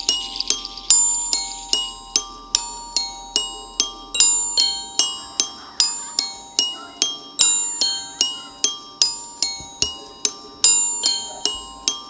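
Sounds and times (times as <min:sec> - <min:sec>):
glockenspiel notes: 0:00.0 - 0:12.0.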